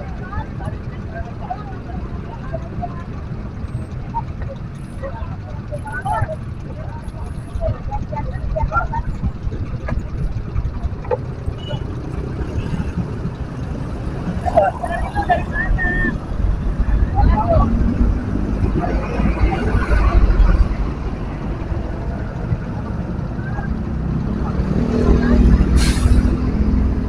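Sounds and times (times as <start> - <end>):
bus pulling up: 0.0 - 27.0
idling engines in traffic: 0.0 - 27.0
people talking: 0.0 - 27.0.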